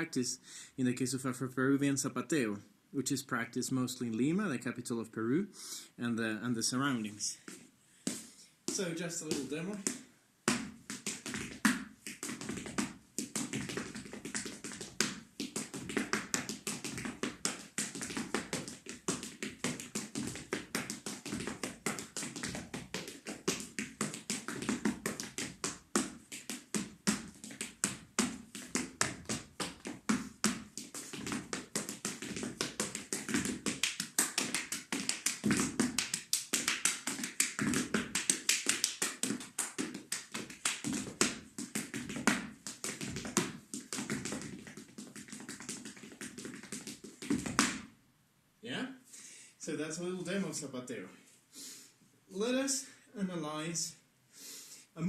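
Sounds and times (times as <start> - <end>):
hard-soled shoes tapping on wooden floor: 7.4 - 47.9.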